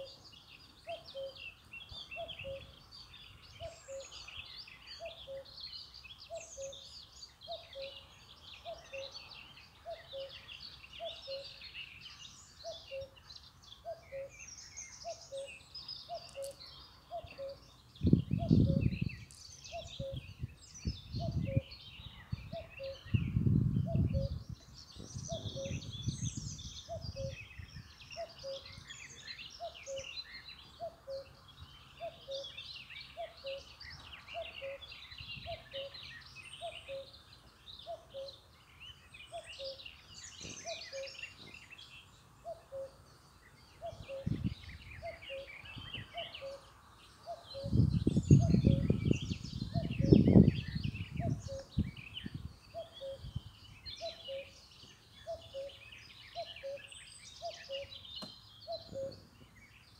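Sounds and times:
birds singing and chirping: 0.0 - 59.9.

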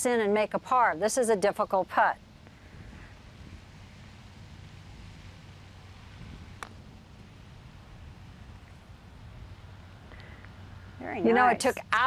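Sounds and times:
low steady hum: 0.0 - 12.0
putter striking golf ball: 6.6 - 6.8.

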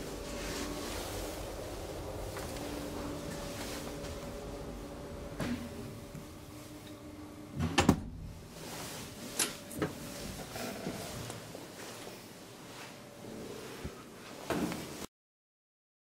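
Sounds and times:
elevator car humming: 0.0 - 11.8.

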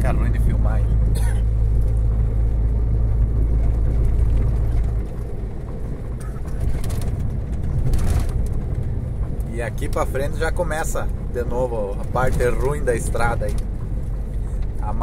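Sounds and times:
road noise rumble: 0.0 - 15.0
truck diesel engine drone: 0.0 - 15.0.

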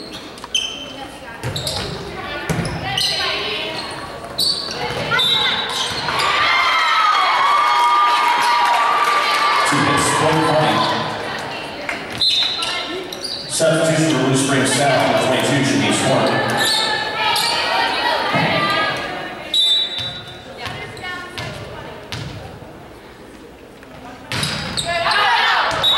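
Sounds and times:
echoing voices: 0.8 - 25.9
volleyball bouncing on wooden floor: 1.4 - 2.9, 20.0 - 22.5.

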